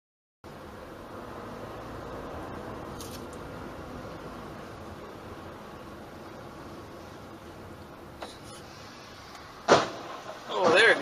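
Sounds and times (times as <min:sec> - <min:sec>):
cars colliding bang: 0:09.6 - 0:11.0.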